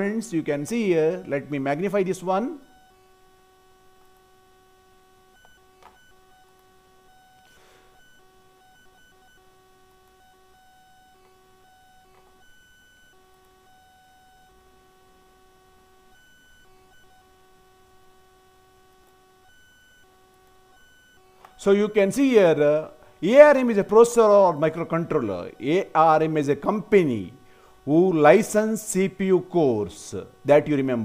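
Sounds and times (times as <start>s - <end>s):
faint electronic tone: 0.0s - 31.0s.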